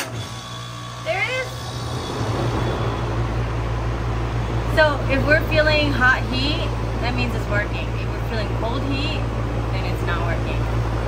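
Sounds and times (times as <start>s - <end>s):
compressor low hum: 0.0s - 11.0s
fan rushing air: 0.0s - 11.0s.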